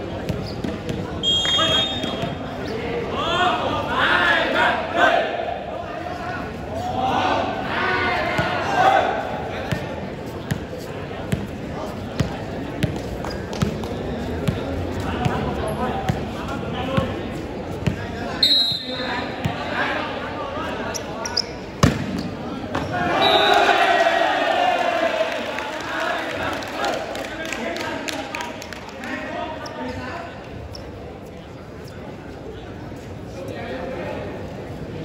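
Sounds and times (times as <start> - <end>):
crowd chatter: 0.0 - 35.0
players shouting: 22.8 - 27.0.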